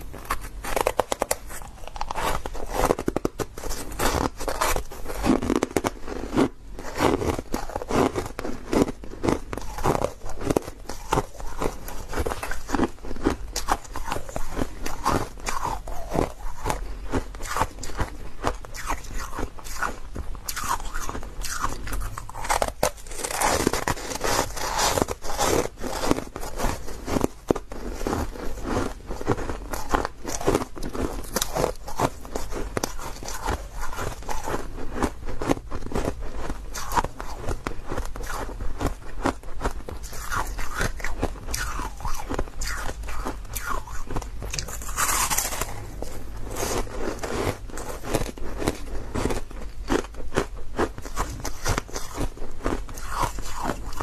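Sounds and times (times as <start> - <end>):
ice being chewed: 0.0 - 54.0.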